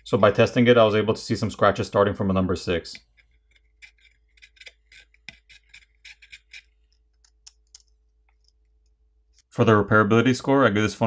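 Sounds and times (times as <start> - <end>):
metal pick scratching steel: 0.0 - 0.5, 3.0 - 7.0.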